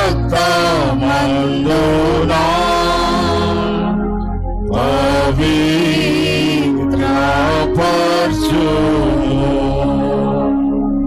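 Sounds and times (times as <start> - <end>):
person singing a hymn: 0.0 - 10.6.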